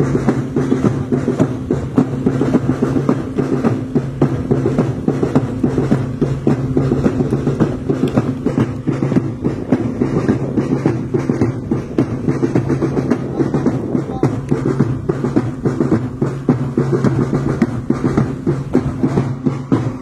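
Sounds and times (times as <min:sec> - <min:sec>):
quick drumming: 0:00.0 - 0:20.0.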